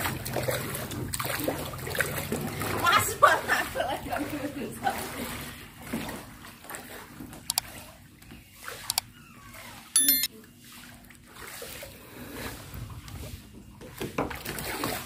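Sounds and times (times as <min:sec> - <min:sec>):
floodwater sloshing and splashing: 0:00.0 - 0:15.0
bright chime: 0:10.0 - 0:10.3.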